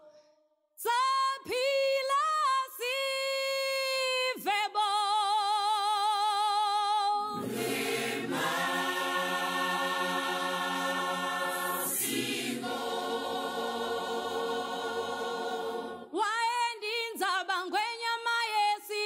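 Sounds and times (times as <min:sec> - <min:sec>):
choir singing held chords: 0:07.3 - 0:16.2.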